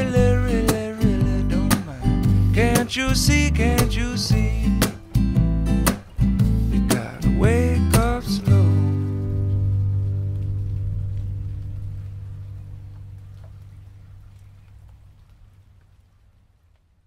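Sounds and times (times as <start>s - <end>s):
acoustic guitar chord ringing: 0.0s - 10.2s.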